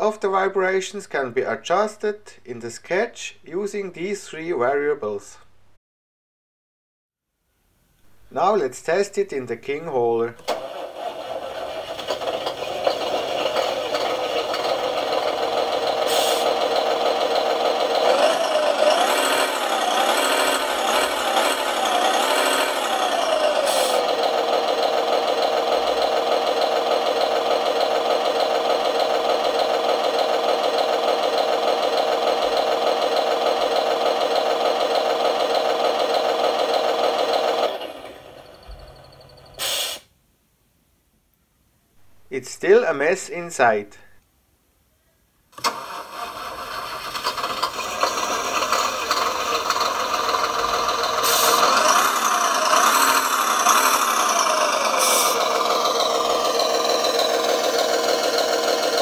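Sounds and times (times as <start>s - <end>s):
simulated diesel engine sound: 8.1s - 40.1s, 45.6s - 59.0s
shaker motor vibrating: 48.1s - 59.0s.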